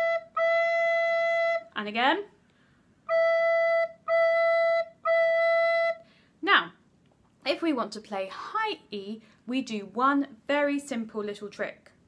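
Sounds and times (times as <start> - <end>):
recorder playing steady note: 0.0 - 1.8, 3.0 - 6.0.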